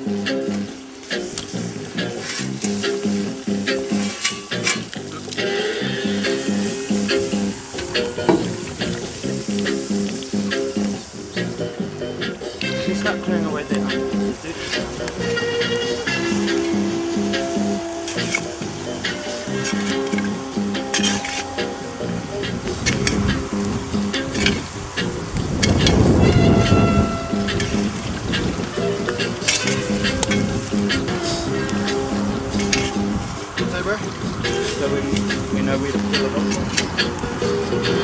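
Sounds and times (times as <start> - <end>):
hot stones sizzling: 0.0 - 38.0
rush of steam: 0.0 - 38.0.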